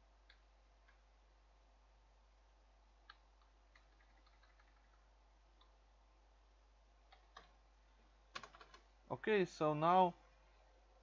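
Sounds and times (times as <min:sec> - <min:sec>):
computer keyboard typing: 0:03.1 - 0:05.7, 0:07.1 - 0:07.5, 0:08.3 - 0:08.8.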